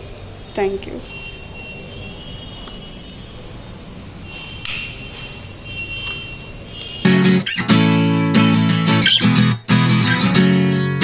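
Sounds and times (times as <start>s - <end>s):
strummed guitar music: 7.0s - 11.0s.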